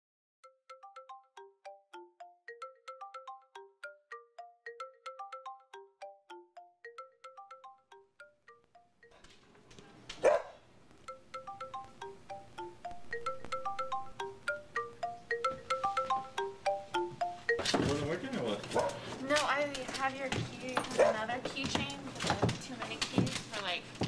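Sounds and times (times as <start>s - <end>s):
chimes ringing: 0.7s - 9.2s, 11.1s - 18.5s
faint background hiss: 8.0s - 24.0s.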